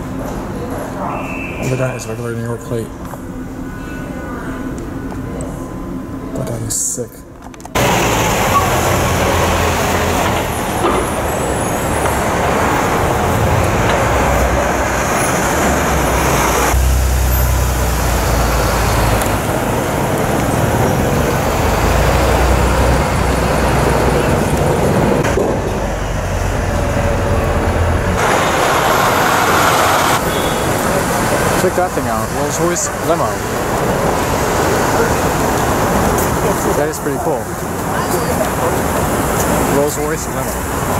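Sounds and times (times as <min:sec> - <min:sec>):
traffic passing: 0:07.7 - 0:40.9.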